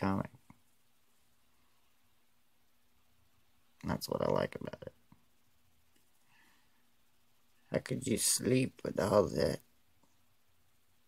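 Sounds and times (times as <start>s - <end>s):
man speaking: 0.0s - 0.6s, 3.8s - 5.1s, 7.6s - 9.7s
faint steady hum: 0.0s - 11.0s.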